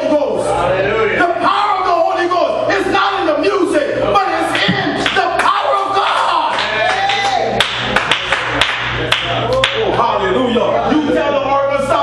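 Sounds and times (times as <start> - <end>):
sharp hand claps: 4.5 - 10.0.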